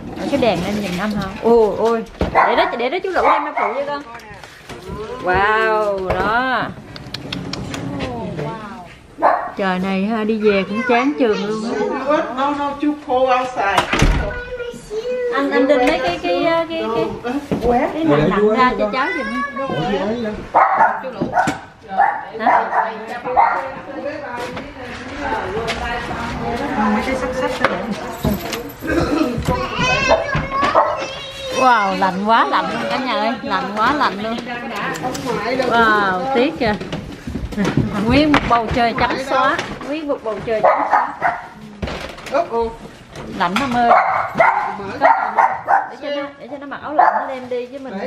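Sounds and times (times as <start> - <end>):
dog barking: 2.3 - 3.9, 9.2 - 9.6, 20.5 - 23.8, 30.1 - 31.1, 40.6 - 41.6, 43.8 - 46.0, 46.9 - 47.4.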